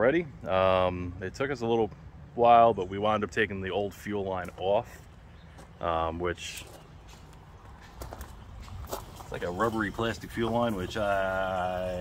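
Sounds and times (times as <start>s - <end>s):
footsteps on gravel: 4.4s - 12.0s.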